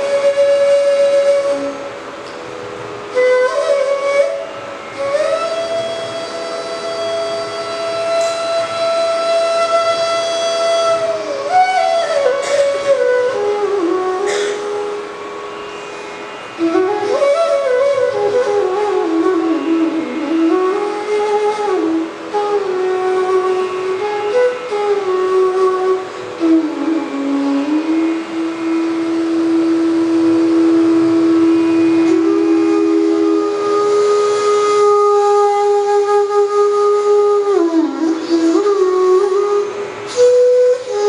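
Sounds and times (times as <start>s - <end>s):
bamboo flute melody: 0.0s - 41.0s
steady drone: 0.0s - 41.0s.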